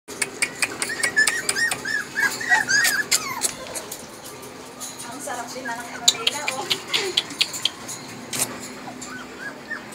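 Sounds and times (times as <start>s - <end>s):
puppies whining: 0.3s - 9.9s
sharp ticks: 6.1s - 7.8s.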